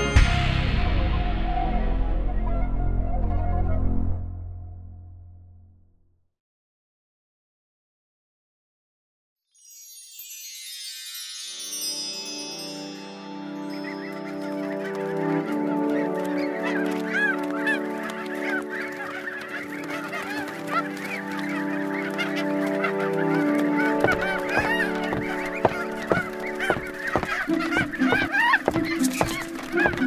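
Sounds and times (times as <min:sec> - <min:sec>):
seagulls calling: 0:13.7 - 0:30.0.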